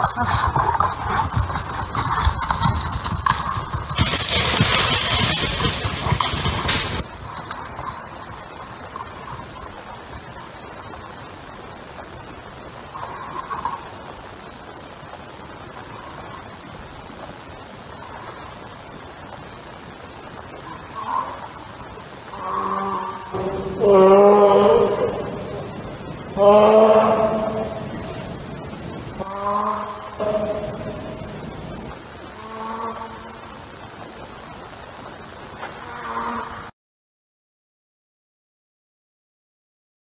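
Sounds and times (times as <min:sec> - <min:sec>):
bear crashing through leaves and brush: 0:02.6 - 0:07.6.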